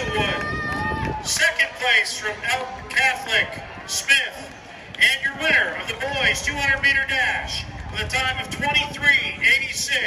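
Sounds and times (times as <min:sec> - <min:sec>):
man speaking over public address: 0:00.0 - 0:00.5, 0:01.2 - 0:10.0.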